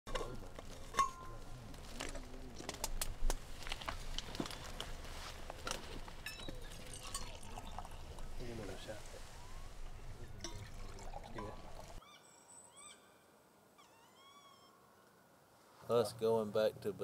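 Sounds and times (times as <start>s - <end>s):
liquid pouring into mug: 6.6s - 8.4s, 10.4s - 12.0s.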